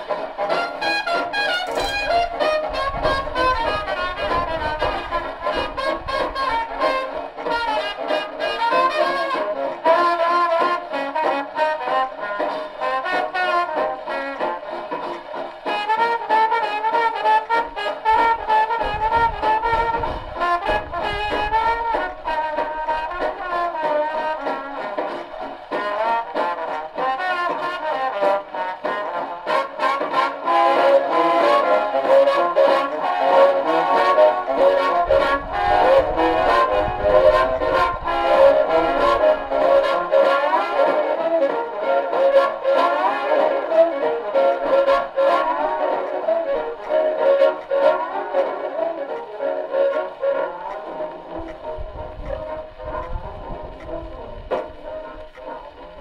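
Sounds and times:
big band swing music: 0.0s - 56.0s.

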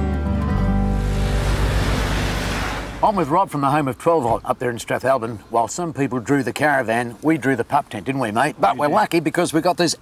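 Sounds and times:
whoosh with low rumble: 0.6s - 3.4s.

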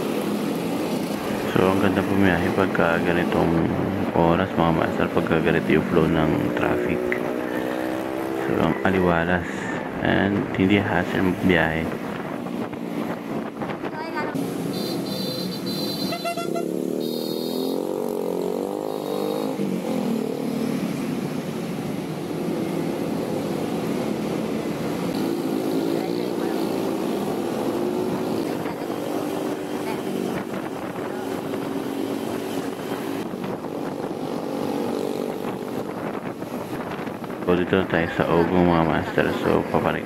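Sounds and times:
road noise: 0.0s - 40.0s.

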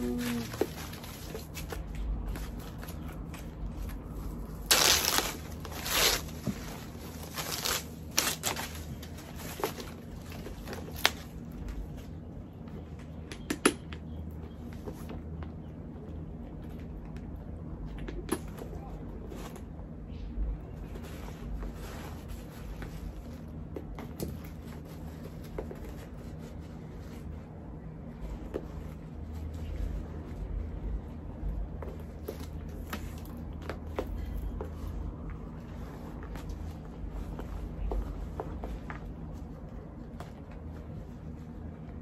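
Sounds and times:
packaging wrap crinkling: 3.9s - 11.4s.

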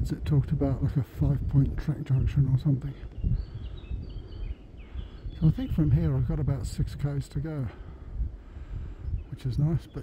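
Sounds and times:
faint bird calls: 0.8s - 6.4s.

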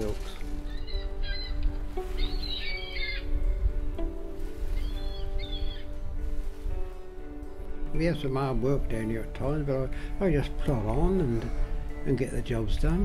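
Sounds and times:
bird calls: 0.0s - 3.9s, 4.6s - 6.1s
music of slow held notes: 0.0s - 13.0s.

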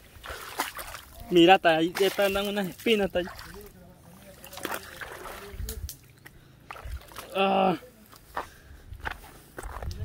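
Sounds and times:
footsteps on loose cobbles: 8.1s - 10.0s.

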